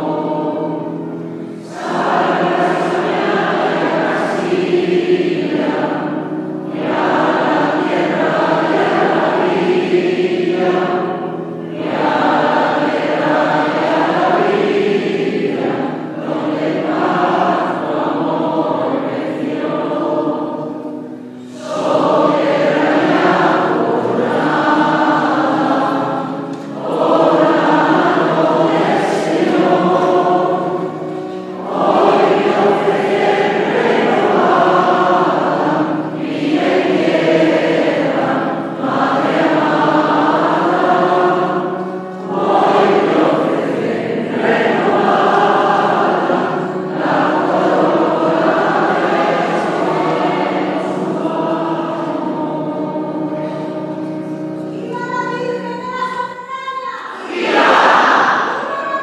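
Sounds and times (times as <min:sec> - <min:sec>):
choir breaths: 0:00.0 - 0:54.7
choir singing a hymn: 0:00.0 - 0:59.0.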